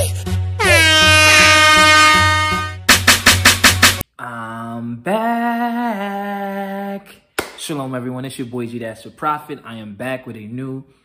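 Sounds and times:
air horn sound effect: 0:00.0 - 0:04.0
hip-hop beat: 0:00.0 - 0:04.0.

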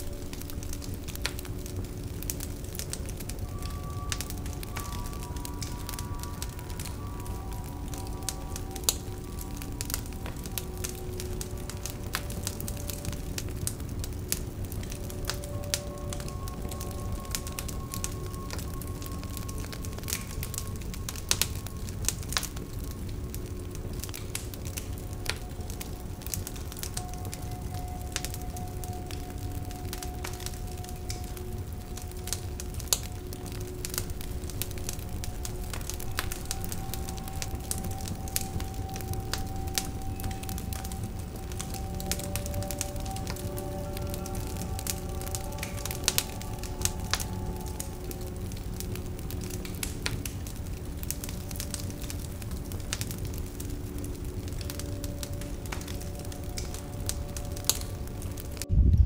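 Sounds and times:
logs crackling and popping: 0:00.0 - 0:58.8
fire rumbling: 0:00.0 - 0:59.0
soft background music: 0:00.0 - 0:59.0.

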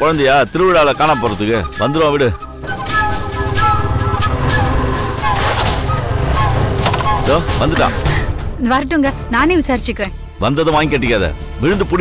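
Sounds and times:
motorcycle engine rumbling: 0:01.6 - 0:08.6.

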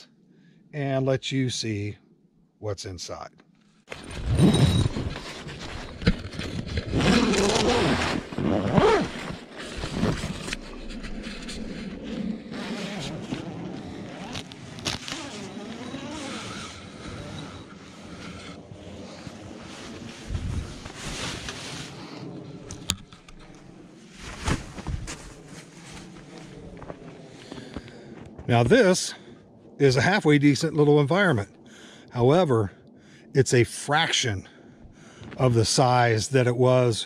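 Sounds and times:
door being unzipped: 0:03.9 - 0:13.6, 0:14.2 - 0:16.8
canvas rustling and scraping: 0:03.9 - 0:22.2, 0:24.0 - 0:27.1.

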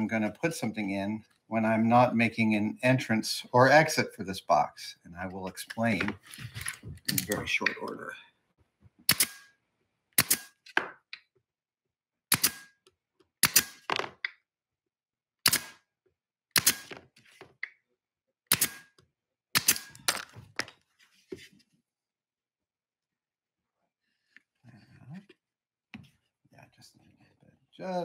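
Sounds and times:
pneumatic nailer shots: 0:09.0 - 0:09.6, 0:10.2 - 0:10.8, 0:12.3 - 0:12.8, 0:13.4 - 0:14.0, 0:15.4 - 0:15.9, 0:16.5 - 0:17.0, 0:18.5 - 0:20.3.

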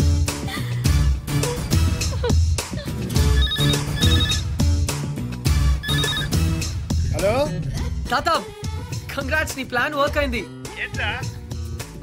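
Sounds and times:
telephone ringing: 0:03.2 - 0:04.5, 0:05.8 - 0:06.5.

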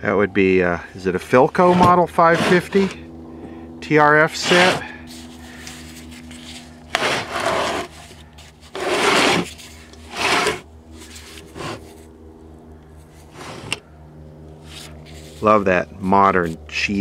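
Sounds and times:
steady low hum: 0:00.0 - 0:17.0
wooden cabinet rubbing and scraping: 0:01.5 - 0:03.0, 0:04.3 - 0:04.9, 0:06.1 - 0:11.9, 0:13.3 - 0:13.8.

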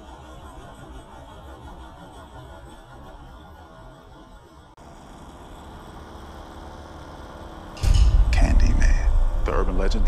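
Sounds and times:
faint engine running: 0:04.7 - 0:10.0.

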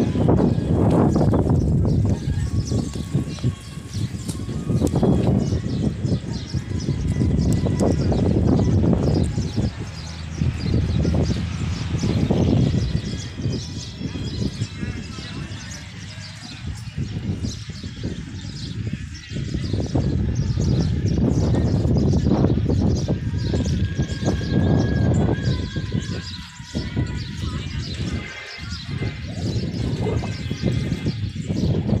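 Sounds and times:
low rumble on microphone: 0:00.0 - 0:32.0
small birds chirping: 0:00.0 - 0:32.0.

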